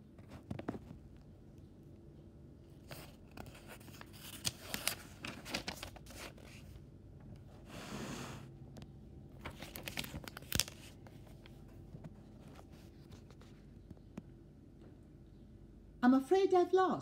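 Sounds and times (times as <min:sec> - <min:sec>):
book pages rustling: 0:00.0 - 0:01.3, 0:02.7 - 0:06.8, 0:08.8 - 0:14.1.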